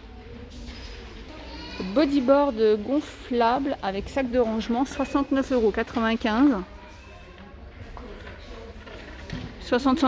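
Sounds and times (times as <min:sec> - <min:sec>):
shop hum and murmur: 0:00.0 - 0:10.0.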